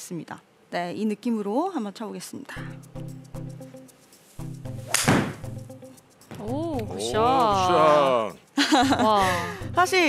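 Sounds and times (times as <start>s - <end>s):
background music: 2.5s - 10.0s
golf club striking ball: 4.9s - 5.6s.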